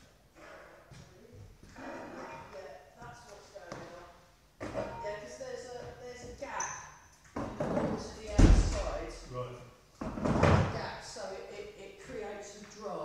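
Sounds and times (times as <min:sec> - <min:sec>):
heavy door thudding shut: 0:08.3 - 0:09.0.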